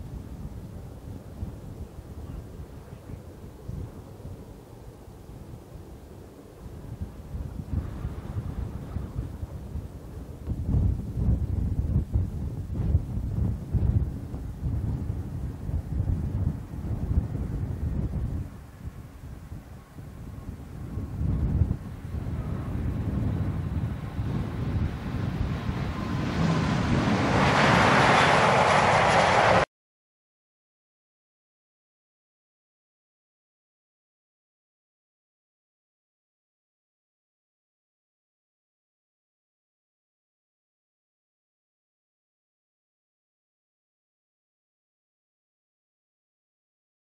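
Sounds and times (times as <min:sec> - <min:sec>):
jet airliner engine roar: 0:00.0 - 0:29.7
wind buffeting microphone: 0:00.0 - 0:29.7.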